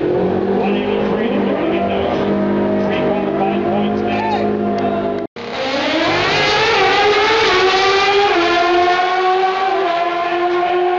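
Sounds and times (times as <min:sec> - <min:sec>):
vehicle engine running: 0:00.5 - 0:08.2.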